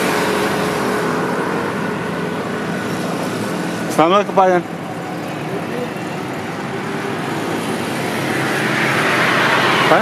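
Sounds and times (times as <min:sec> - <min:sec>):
highway traffic noise: 0:00.0 - 0:10.0
vehicle passing: 0:00.0 - 0:10.0.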